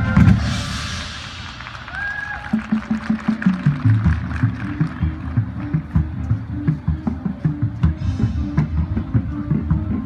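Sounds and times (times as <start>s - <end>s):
cymbal crash: 0.0s - 2.1s
marching band playing: 0.0s - 10.0s.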